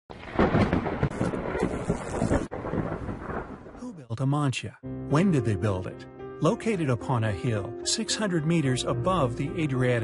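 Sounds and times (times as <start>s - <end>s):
thunder rumbling: 0.1s - 4.1s.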